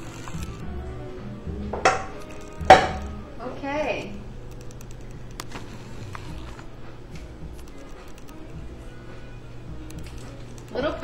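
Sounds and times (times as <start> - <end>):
steady low hum: 0.0 - 11.0
utensils clicking against dishes: 1.8 - 3.2.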